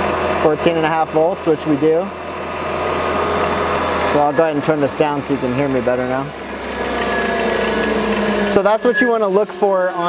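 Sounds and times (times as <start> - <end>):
machine hum with level tones: 0.0 - 10.0.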